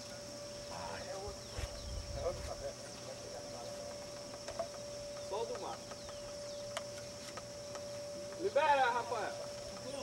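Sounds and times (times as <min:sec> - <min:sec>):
thin high tone: 0:00.0 - 0:10.0
distant people calling out: 0:03.2 - 0:10.0.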